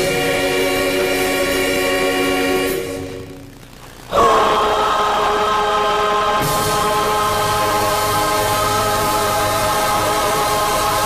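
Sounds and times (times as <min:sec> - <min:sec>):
gospel choir singing: 0:00.0 - 0:03.4, 0:04.1 - 0:11.0.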